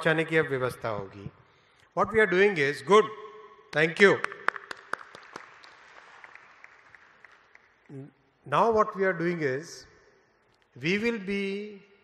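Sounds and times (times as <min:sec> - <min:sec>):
audience applause: 0:04.5 - 0:07.7.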